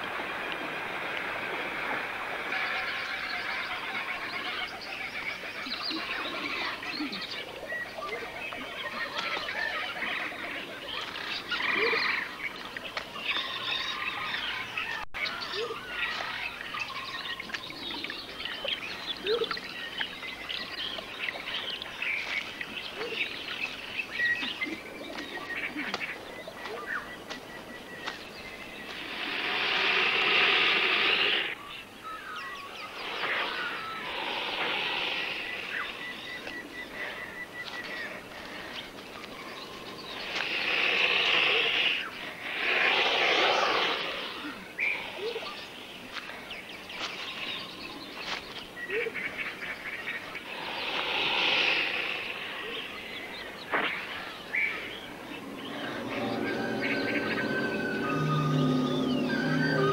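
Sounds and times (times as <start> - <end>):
bird calls: 2.4 - 59.9
harsh bursts of noise: 29.0 - 31.6, 40.4 - 44.4.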